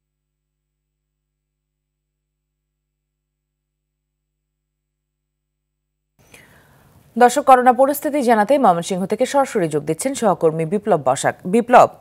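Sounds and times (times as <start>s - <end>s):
woman breathing in: 6.2s - 7.0s
woman speaking: 7.2s - 12.0s.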